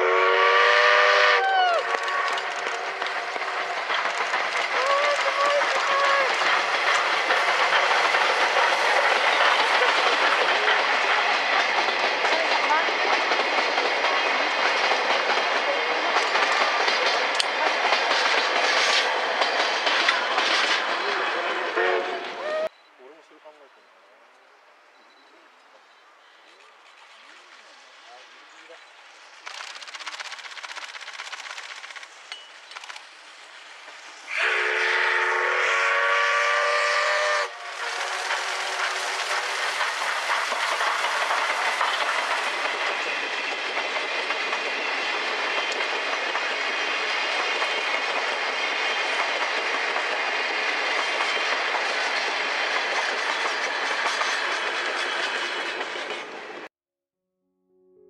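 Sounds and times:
steam locomotive whistle: 0.0s - 3.1s, 4.7s - 6.4s, 21.6s - 22.7s, 34.3s - 38.9s
wheels clattering over rails: 1.8s - 21.1s, 37.7s - 56.7s.

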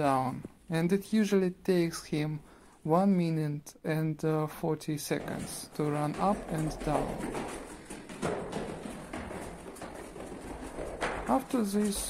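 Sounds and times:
footsteps on concrete steps: 5.1s - 12.0s.

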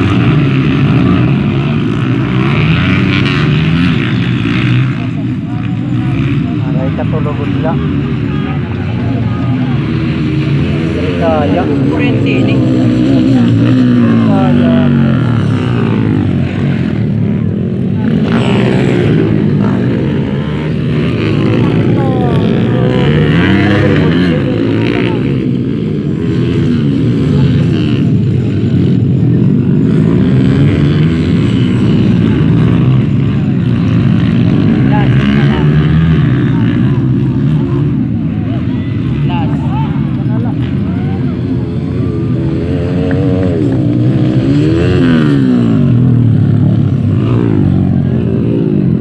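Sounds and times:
dirt bike engines revving: 0.0s - 49.0s.

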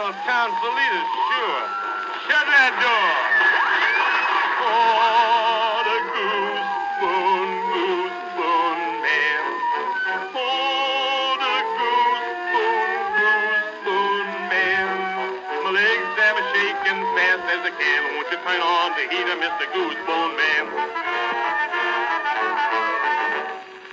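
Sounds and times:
old band recording: 0.0s - 23.9s.

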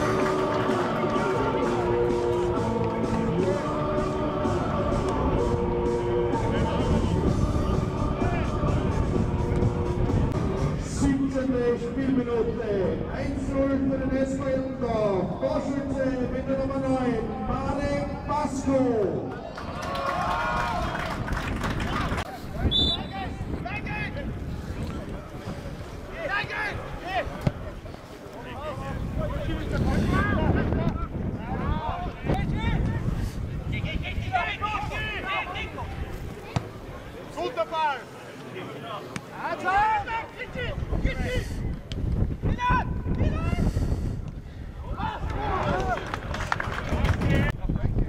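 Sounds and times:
wind rumble on microphone: 5.0s - 10.8s, 19.8s - 35.1s, 40.6s - 48.0s
people shouting and calling: 33.8s - 36.6s.

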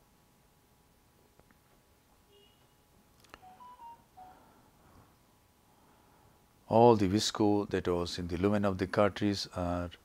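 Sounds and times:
faint electronic beeps: 2.3s - 4.6s.

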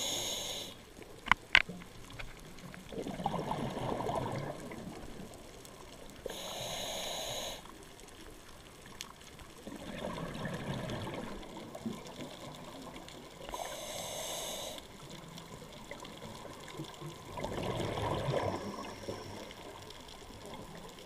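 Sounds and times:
hissing inhale through regulator: 0.0s - 0.9s, 6.2s - 7.8s, 13.4s - 15.0s
exhaled bubbles rumbling underwater: 2.0s - 6.4s, 7.8s - 13.9s, 14.9s - 21.0s.

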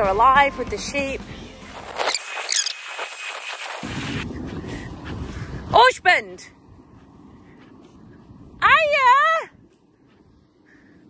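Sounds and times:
rustling of long grass underfoot: 1.1s - 11.0s
wind on microphone: 1.1s - 11.0s
high chirping calls: 2.1s - 2.8s
woman calling out: 5.7s - 6.5s, 8.6s - 9.6s.

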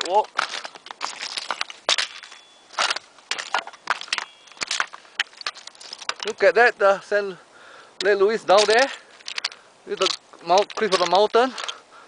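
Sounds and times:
small rocks shifting: 0.0s - 7.0s, 8.0s - 11.9s
footsteps crunching on scree: 0.0s - 7.3s, 8.0s - 11.8s.

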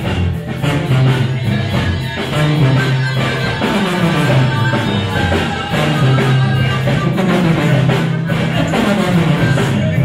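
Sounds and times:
live band playing: 0.0s - 10.0s
sousaphone bass line: 0.0s - 10.0s.

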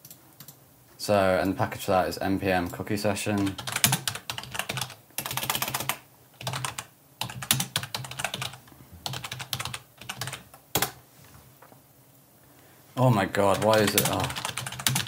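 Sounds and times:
computer keyboard typing: 3.4s - 11.0s, 13.5s - 15.0s.

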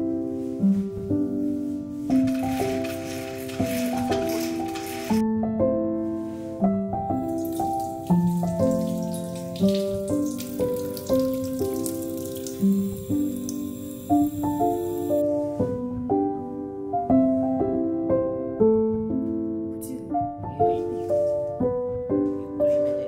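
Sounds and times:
soft piano music: 0.0s - 23.0s
tap running into a sink: 7.2s - 15.2s.

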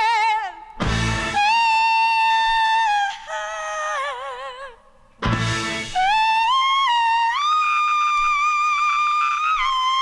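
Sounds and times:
funk-rock lead note: 0.8s - 1.4s, 5.2s - 6.1s.

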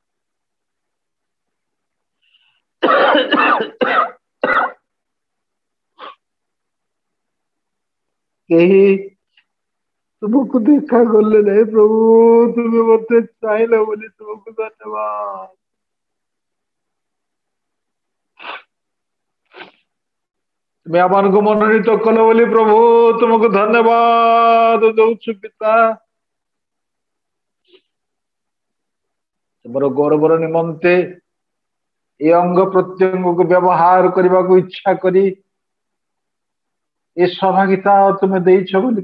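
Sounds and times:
man coughing hard: 2.8s - 4.8s
man blowing nose: 6.0s - 6.2s, 18.4s - 18.8s, 19.5s - 19.9s.

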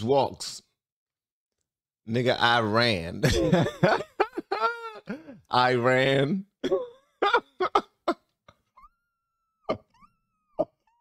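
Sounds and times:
man laughing hard: 3.2s - 5.4s, 6.7s - 8.2s.

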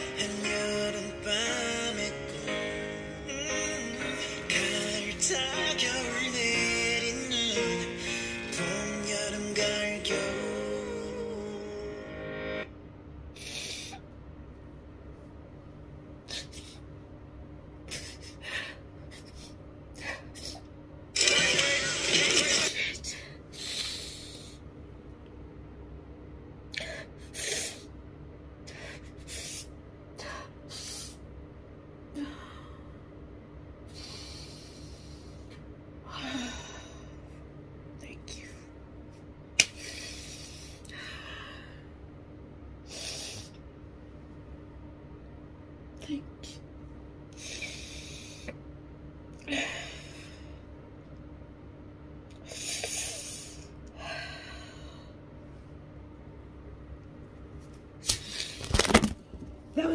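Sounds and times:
woman crying and sniffling: 16.3s - 16.9s, 17.9s - 20.6s.

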